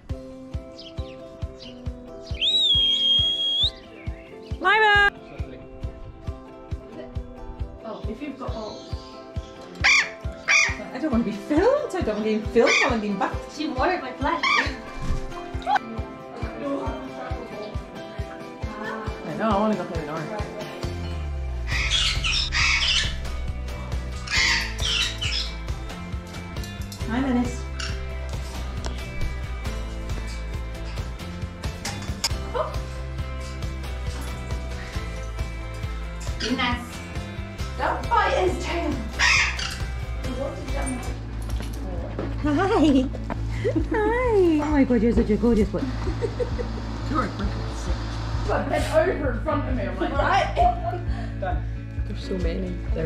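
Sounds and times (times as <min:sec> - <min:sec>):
background music with steady beat: 0:00.0 - 0:53.0
parrot whistling calls: 0:02.3 - 0:03.8, 0:21.7 - 0:23.2, 0:24.2 - 0:25.6
parrots squawking harshly: 0:09.8 - 0:10.8, 0:12.6 - 0:13.0, 0:14.4 - 0:14.8, 0:21.6 - 0:23.3, 0:24.1 - 0:25.6, 0:27.7 - 0:28.0, 0:39.1 - 0:40.1.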